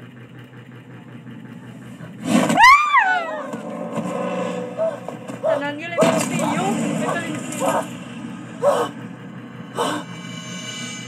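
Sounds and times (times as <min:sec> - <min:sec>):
high-pitched scream: 0:02.5 - 0:03.6.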